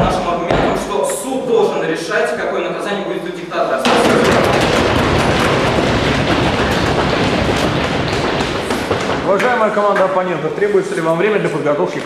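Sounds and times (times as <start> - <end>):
audience applauding: 3.9 - 10.4.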